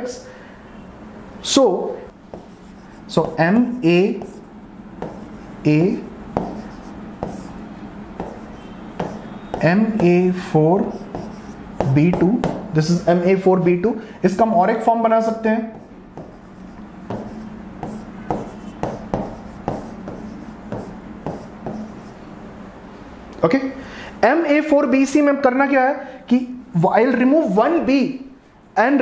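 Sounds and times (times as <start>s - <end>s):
pen tapping on board: 2.3s - 4.4s, 5.0s - 5.4s, 6.4s - 7.5s, 8.2s - 10.2s, 10.8s - 12.8s, 15.7s - 22.0s
pen rubbing on board: 2.3s - 7.6s, 8.2s - 12.7s, 15.7s - 22.2s.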